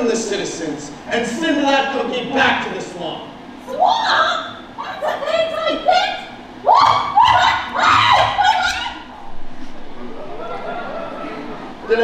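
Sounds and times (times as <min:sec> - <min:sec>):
high-pitched voice wailing: 0:06.7 - 0:09.0.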